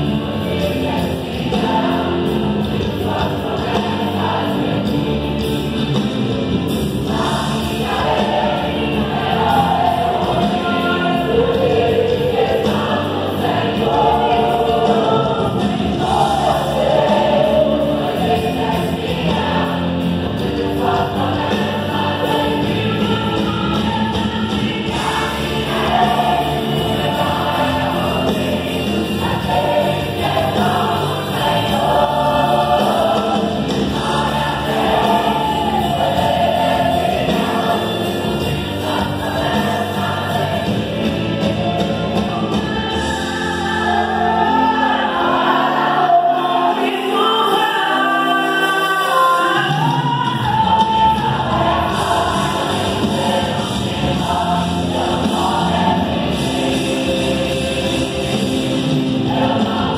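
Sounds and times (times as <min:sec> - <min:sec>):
choir singing gospel: 0:00.0 - 0:59.9.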